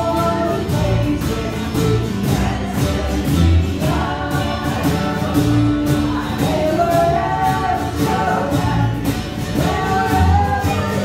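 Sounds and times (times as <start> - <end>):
acoustic band playing a waltz: 0.0 - 11.0
upright bass line: 0.0 - 11.0.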